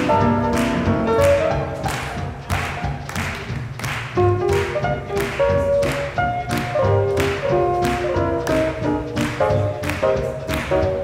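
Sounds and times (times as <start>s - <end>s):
up-tempo swing music: 0.0s - 11.0s.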